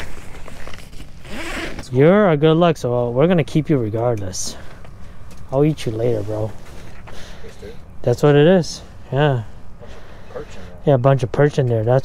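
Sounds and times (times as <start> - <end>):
zipper being pulled: 0.0 - 1.9.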